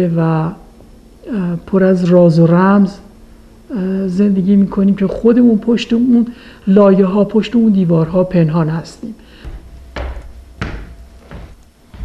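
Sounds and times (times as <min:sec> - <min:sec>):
low steady hum: 0:00.0 - 0:12.0
footsteps on indoor staircase: 0:09.3 - 0:12.0.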